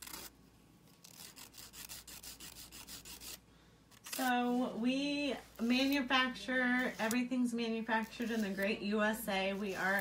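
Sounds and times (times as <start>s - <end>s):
nail file rubbing fingernail: 1.0s - 3.4s.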